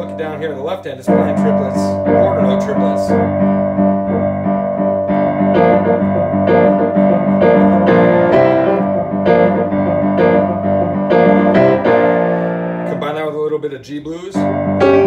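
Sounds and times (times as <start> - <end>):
piano rock shuffle: 0.0 - 15.0.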